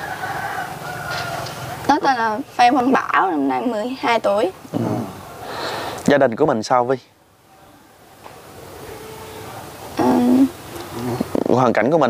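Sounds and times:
rooster crowing: 0.0 - 1.8.

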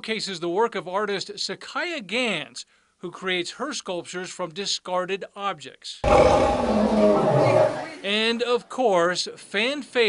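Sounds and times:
animatronic dinosaur roaring: 6.0 - 8.1.

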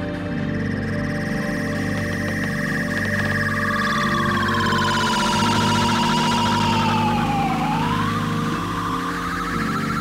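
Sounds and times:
siren-like synthesizer tone: 3.5 - 10.0.

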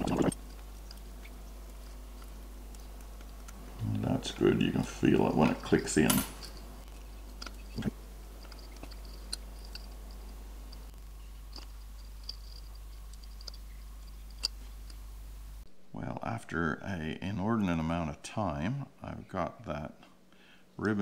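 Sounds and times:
steady low hum: 0.0 - 21.0
faint clicks of small parts: 4.8 - 15.0.

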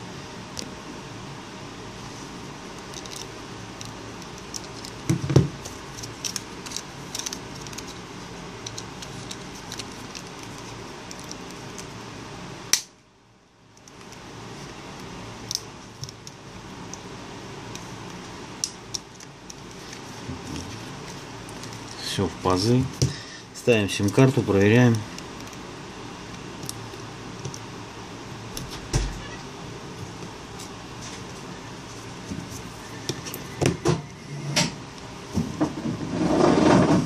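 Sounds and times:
steady background hiss: 0.0 - 35.8.

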